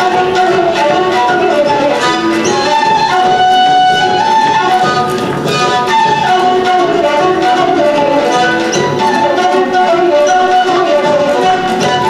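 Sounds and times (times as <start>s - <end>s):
folk dance fiddle music: 0.0s - 12.0s.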